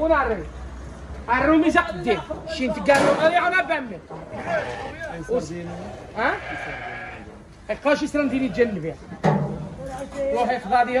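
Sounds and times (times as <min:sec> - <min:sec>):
sheep bleating: 0:04.3 - 0:05.2, 0:06.2 - 0:07.3.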